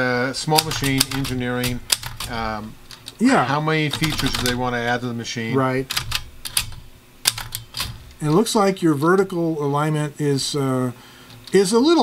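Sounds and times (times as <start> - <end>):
typewriter key strikes: 0.6 - 2.4, 3.9 - 4.6, 5.9 - 8.0.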